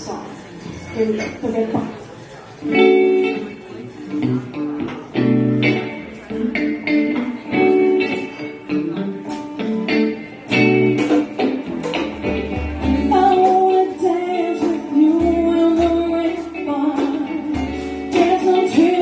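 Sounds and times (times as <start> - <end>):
electric guitar chords strummed: 2.6 - 19.0.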